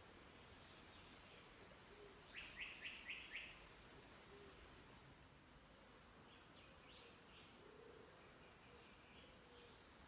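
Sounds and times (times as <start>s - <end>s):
faint forest background: 0.0s - 10.0s.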